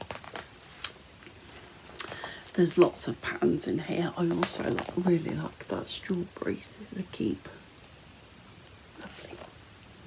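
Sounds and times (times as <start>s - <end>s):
handling rustles: 4.1s - 5.5s.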